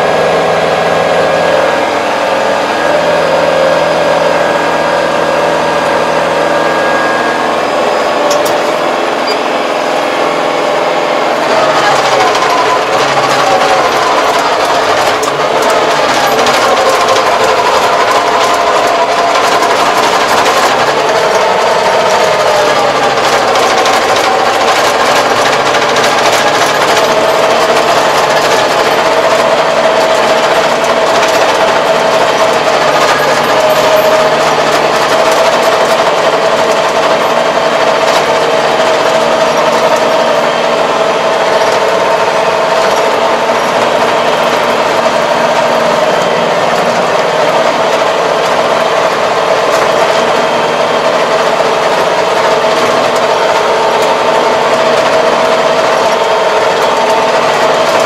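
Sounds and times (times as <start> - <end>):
tractor engine drone with whine: 0.0 - 58.0
dense rattle: 11.3 - 58.0.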